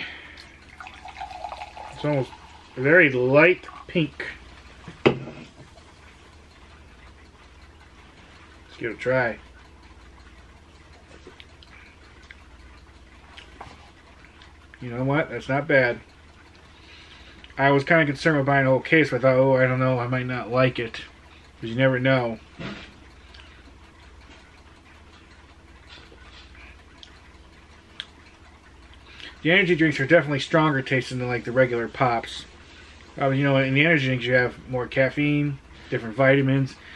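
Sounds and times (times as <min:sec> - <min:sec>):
low steady hum: 0:00.0 - 0:36.9
carbonated drink fizzing: 0:00.4 - 0:04.0.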